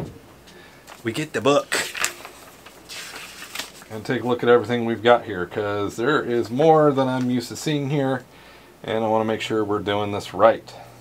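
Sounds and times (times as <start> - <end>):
pages turning: 0.8 - 4.4
paper rustling: 0.8 - 4.7.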